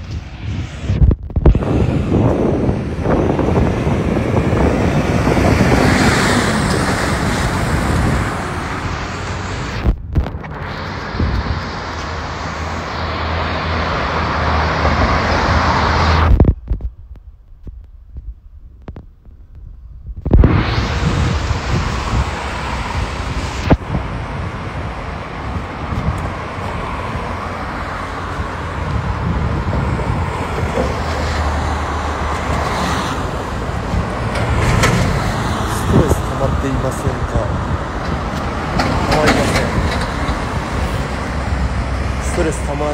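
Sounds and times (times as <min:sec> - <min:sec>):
road traffic: 0:00.0 - 0:42.9
wind rumble on microphone: 0:00.0 - 0:42.9.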